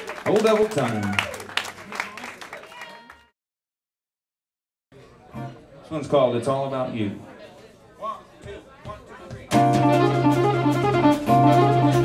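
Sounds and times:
small audience clapping: 0:00.0 - 0:03.3.

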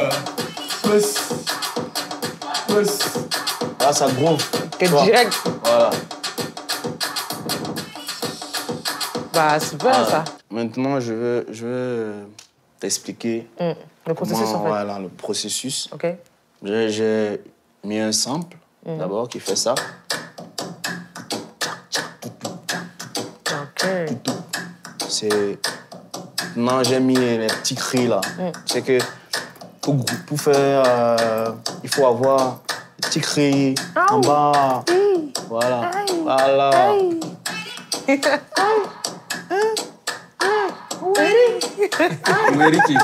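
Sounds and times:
quick percussion hits: 0:00.0 - 0:10.4, 0:19.5 - 0:43.0
sampled vocal cries of hey: 0:37.6 - 0:41.4.

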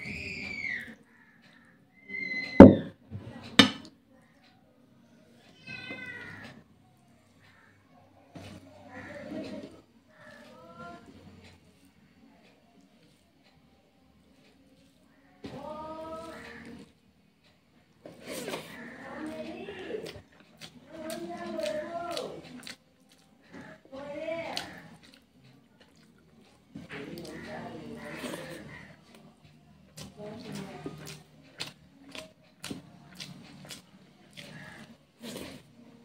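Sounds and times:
cat meowing: 0:05.6 - 0:06.6
person chewing food: 0:08.4 - 0:36.0.

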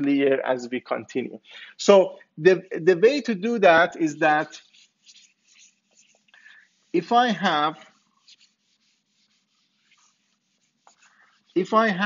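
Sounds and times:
eraser rubbing on whiteboard: 0:03.6 - 0:12.0.

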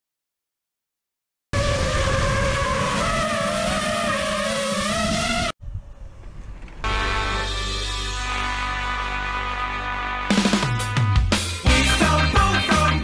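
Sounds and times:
rushing noise: 0:01.6 - 0:07.5
engine-like drone: 0:01.6 - 0:08.4.

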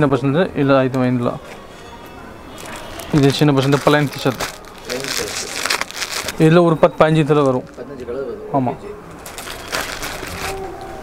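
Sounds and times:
plastic packaging crinkling: 0:02.5 - 0:07.9, 0:09.2 - 0:11.0.

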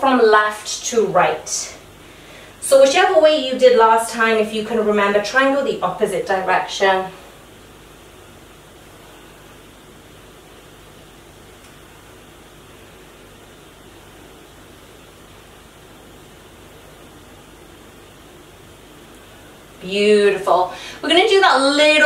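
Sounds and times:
steady background hiss: 0:00.0 - 0:22.0.

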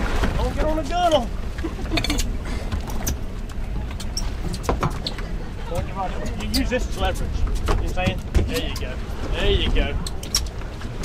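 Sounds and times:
sea around a boat: 0:00.0 - 0:11.0
wind: 0:00.0 - 0:11.0.

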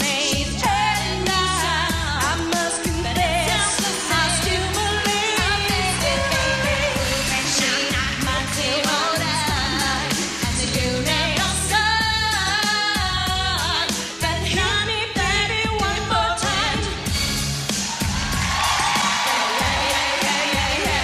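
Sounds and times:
pop song with vibrato vocal: 0:00.0 - 0:21.0
steady drum beat: 0:00.0 - 0:21.0.

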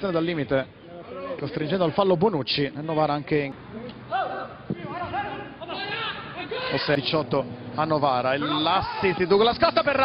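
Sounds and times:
high-pitched shouts: 0:08.4 - 0:09.5.

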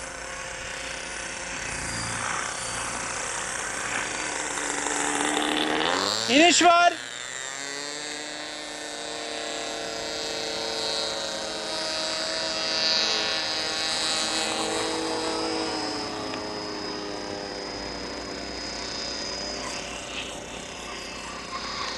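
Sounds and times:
model plane engine buzzing: 0:00.0 - 0:21.9.

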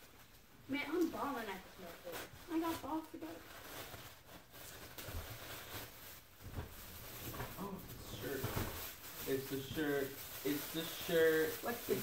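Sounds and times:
tissue paper rustling: 0:00.9 - 0:12.0.

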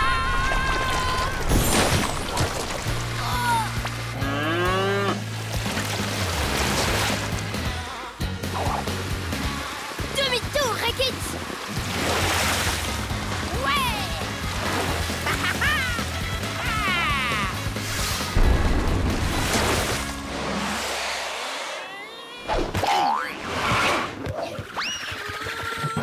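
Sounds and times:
background music: 0:02.8 - 0:21.2
cartoon cow mooing: 0:04.2 - 0:05.2
falling cry: 0:16.6 - 0:17.6.

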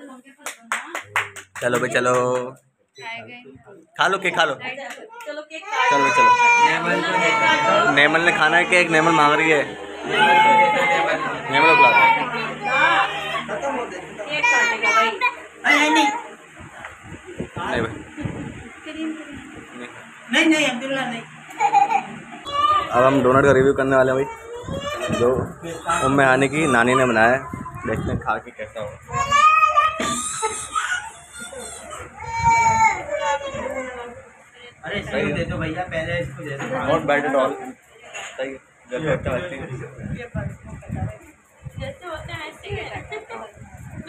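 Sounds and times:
people talking: 0:00.0 - 0:44.0
baby crying: 0:05.6 - 0:16.2, 0:24.2 - 0:27.8, 0:29.1 - 0:34.1
children's voices: 0:21.7 - 0:23.0, 0:24.2 - 0:26.1, 0:26.7 - 0:28.2, 0:29.1 - 0:34.4.

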